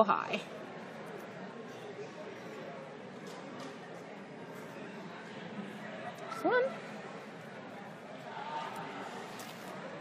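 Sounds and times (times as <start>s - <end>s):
background chatter of many voices: 0.0s - 10.0s.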